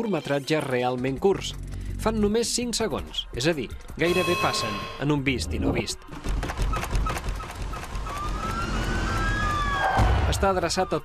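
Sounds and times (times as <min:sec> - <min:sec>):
low rumble: 0:05.2 - 0:06.0
police siren wailing: 0:08.2 - 0:10.1.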